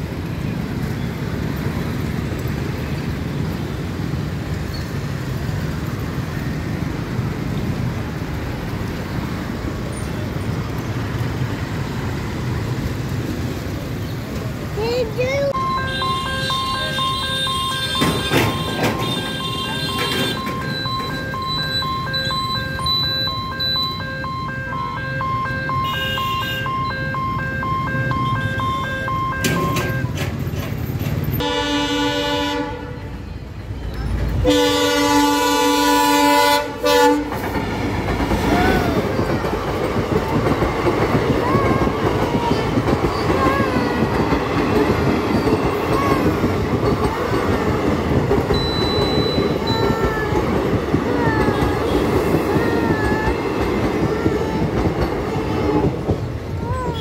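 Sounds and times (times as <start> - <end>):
train wheels rumbling and clattering: 0.0 - 23.8, 29.4 - 57.0
locomotive horn blasts: 15.8 - 20.6, 25.7 - 26.9, 31.4 - 33.2, 34.4 - 37.4
pulsing electronic beep: 20.4 - 25.9, 48.5 - 49.9.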